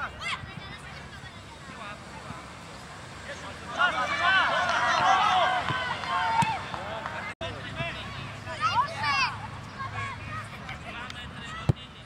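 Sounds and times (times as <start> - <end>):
children shouting: 3.7 - 6.6.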